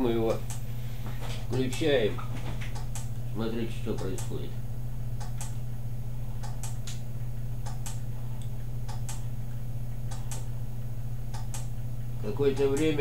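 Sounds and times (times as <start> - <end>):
timer relay clicking: 0.0 - 0.7, 1.4 - 3.2, 3.8 - 4.5, 5.1 - 5.6, 6.4 - 9.3, 9.9 - 10.6, 11.2 - 13.0
steady low hum: 0.0 - 13.0.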